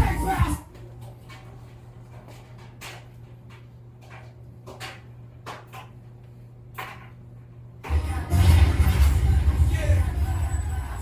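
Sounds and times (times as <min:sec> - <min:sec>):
loud bass-heavy music: 0:00.0 - 0:00.6, 0:07.9 - 0:11.0.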